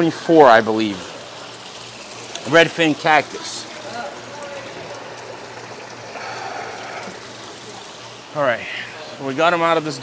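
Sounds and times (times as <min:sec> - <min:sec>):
water trickling in aquarium: 0:00.0 - 0:10.0.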